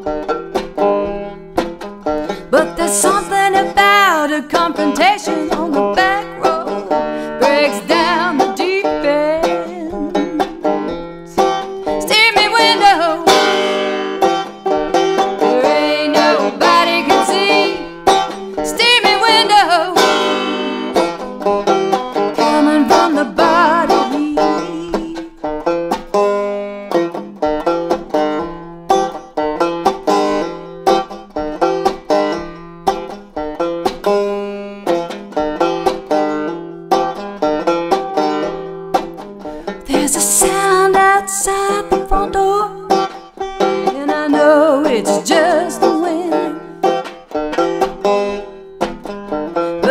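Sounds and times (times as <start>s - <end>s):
banjo picked in rolling patterns: 0.0s - 49.9s
woman singing long sliding notes: 2.5s - 10.6s, 11.3s - 13.8s, 15.5s - 17.9s, 18.6s - 21.0s, 22.4s - 25.4s, 39.8s - 42.9s, 43.9s - 46.7s.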